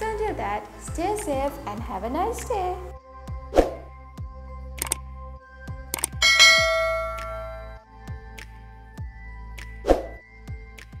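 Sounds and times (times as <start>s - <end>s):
background music with beat: 0.0s - 11.0s
click sound effect: 4.8s - 5.0s, 5.9s - 6.2s
notification bell chime: 6.2s - 7.8s.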